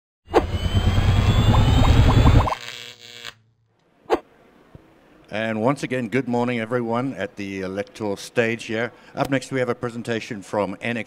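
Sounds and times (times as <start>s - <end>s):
electronic intro sound logo: 0.3s - 2.6s.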